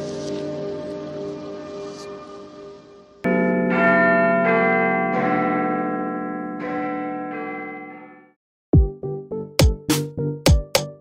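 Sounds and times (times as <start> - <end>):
wall clock chiming bell notes: 3.2 - 8.4.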